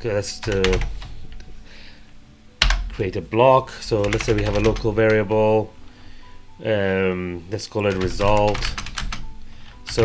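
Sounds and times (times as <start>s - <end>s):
keyboard keystrokes: 7.9s - 9.2s.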